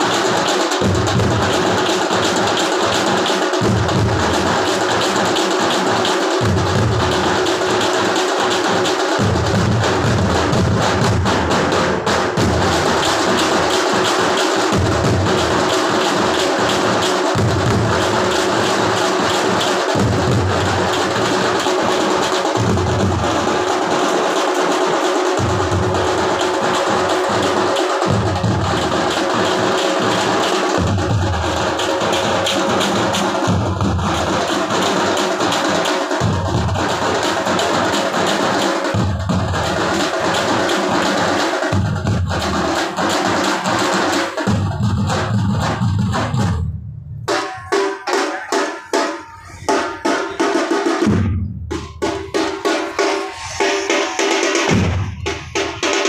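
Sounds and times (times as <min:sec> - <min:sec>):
deeper drum beats: 0:00.0 - 0:40.7, 0:41.5 - 0:56.0
drums beaten rapidly: 0:00.0 - 0:56.0.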